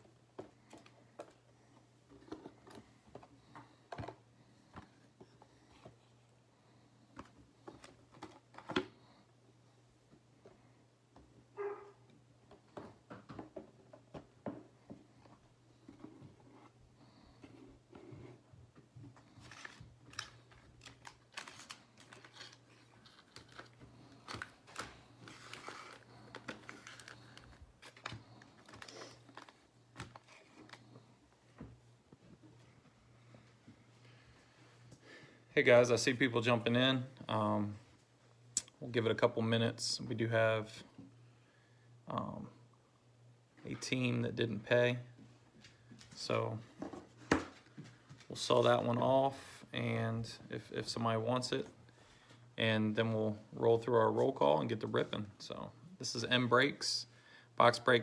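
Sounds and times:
plastic wrapper rustling: 19.4s - 31.0s.

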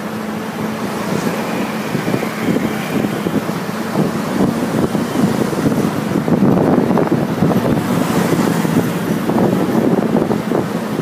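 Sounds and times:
bus rumbling: 0.0s - 11.0s
wind buffeting microphone: 0.0s - 11.0s.

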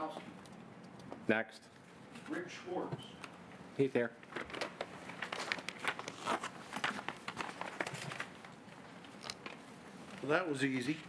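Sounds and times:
rustling and crinkling: 4.3s - 11.0s.

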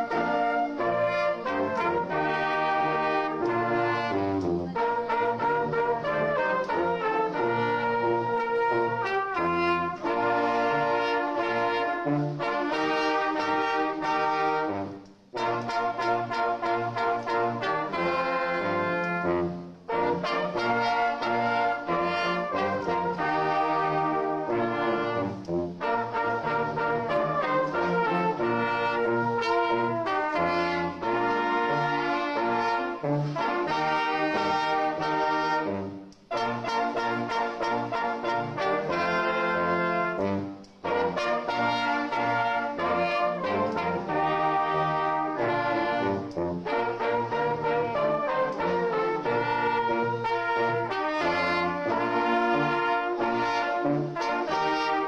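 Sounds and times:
brass band playing: 0.0s - 55.0s.

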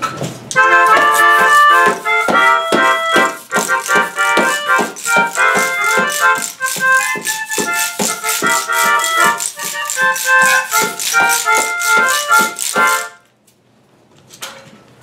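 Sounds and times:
melodica playing lively tune: 0.5s - 13.2s
wooden hand percussion: 0.6s - 13.2s
tambourine shaken and struck: 0.9s - 13.2s.

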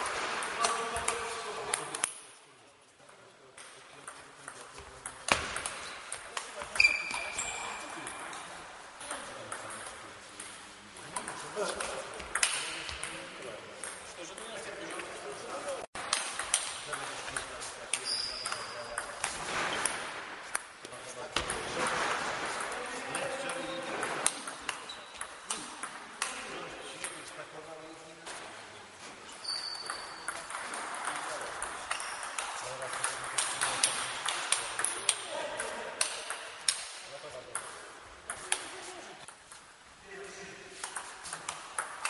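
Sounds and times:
high squeak: 6.8s - 7.8s, 29.4s - 30.3s.

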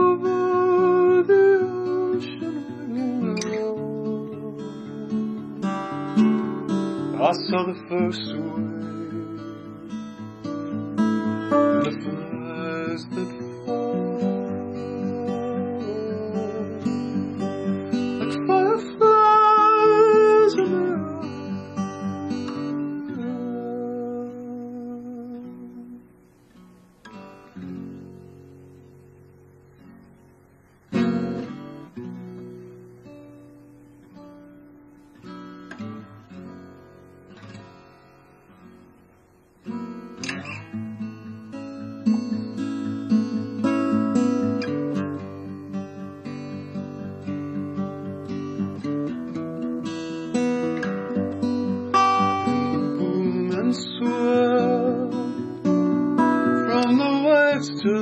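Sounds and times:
acoustic guitar: 0.0s - 58.0s.

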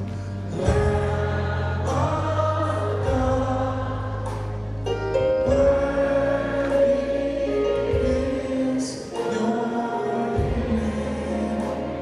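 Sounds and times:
gospel choir singing: 0.0s - 12.0s.

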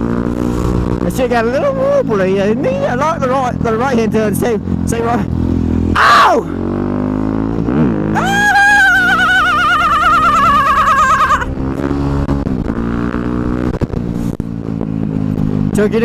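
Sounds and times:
dirt bike engine revving: 0.0s - 15.8s.

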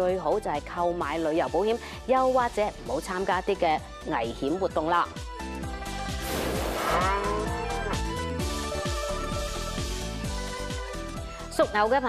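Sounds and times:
music with steady beat: 5.3s - 11.4s.

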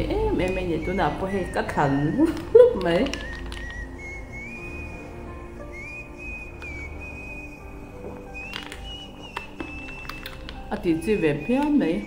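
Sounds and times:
faint background music: 0.0s - 12.0s
high whistle-like tone: 0.2s - 12.0s.

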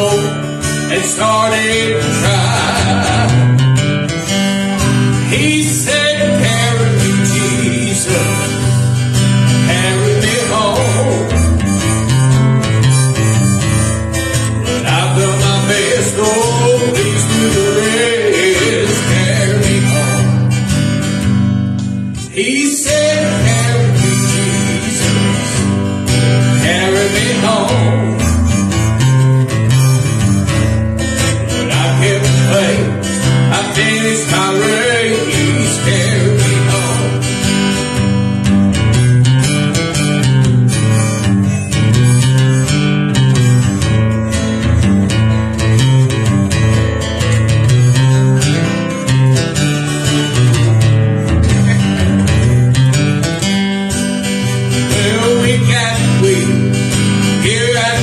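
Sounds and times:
person singing: 0.0s - 3.7s, 4.4s - 8.8s, 9.6s - 11.7s, 14.6s - 20.6s, 22.2s - 28.6s, 31.5s - 37.4s, 54.8s - 58.0s
acoustic guitar strumming: 0.0s - 58.0s.

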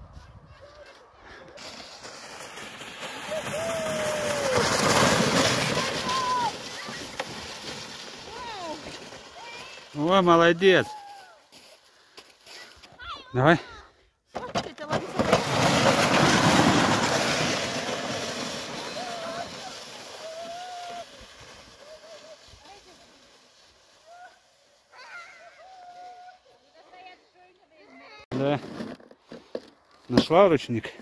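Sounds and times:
plastic sled scraping down snow: 1.5s - 13.2s, 14.4s - 27.3s, 28.1s - 30.9s.

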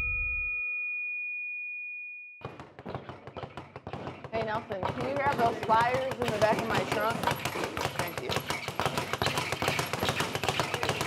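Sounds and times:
speed bag rattling: 2.8s - 11.0s.

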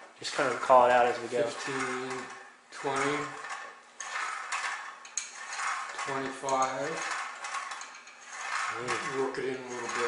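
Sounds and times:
machine pull-down mechanism working: 0.0s - 10.0s.

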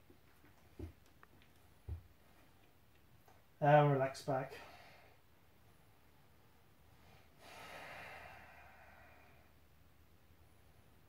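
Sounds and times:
person exhaling: 4.5s - 5.2s, 7.2s - 9.5s.

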